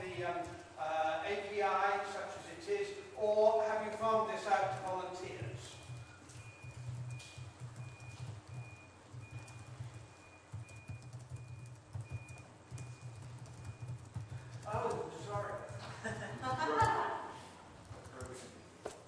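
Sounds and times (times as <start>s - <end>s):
computer keyboard typing: 4.6s - 15.9s, 17.8s - 18.4s.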